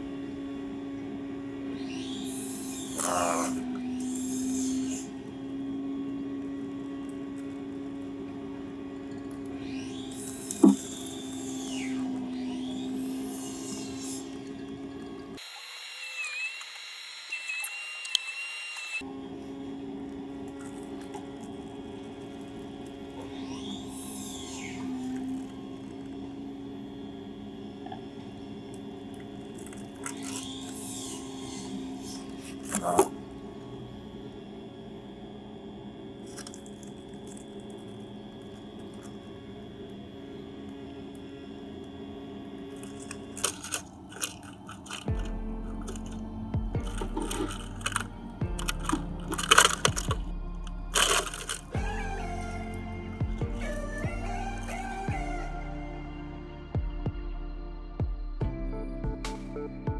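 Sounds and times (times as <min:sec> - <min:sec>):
wasp wings buzzing: 0:01.8 - 0:05.1, 0:28.3 - 0:33.3.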